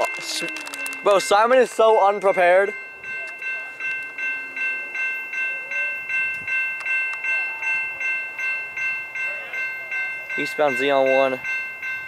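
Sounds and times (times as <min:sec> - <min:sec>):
railroad crossing bell ringing: 0:00.0 - 0:12.0.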